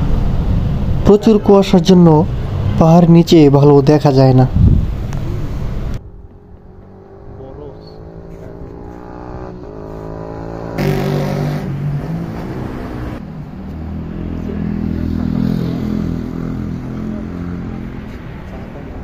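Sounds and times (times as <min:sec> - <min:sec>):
vehicle engine accelerating: 0:04.6 - 0:18.6.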